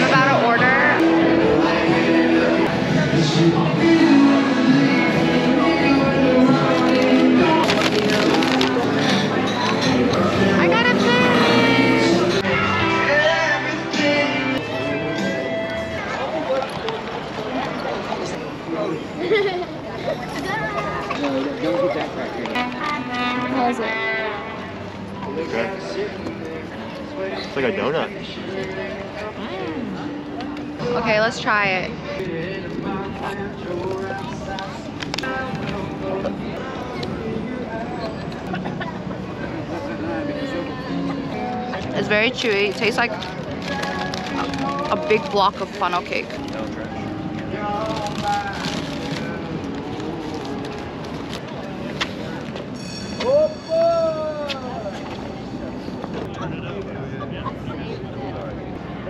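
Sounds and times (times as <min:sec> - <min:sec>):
faint chatter of people: 0:00.0 - 0:59.0
steady outdoor noise: 0:00.0 - 0:59.0.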